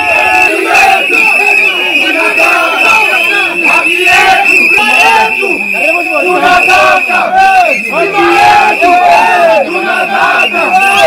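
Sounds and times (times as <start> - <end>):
crowd of protesters shouting: 0.0 - 11.0.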